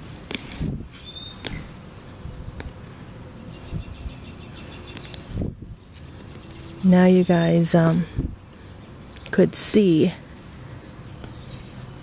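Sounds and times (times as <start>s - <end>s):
leaves rustling and crackling: 0.0s - 12.0s.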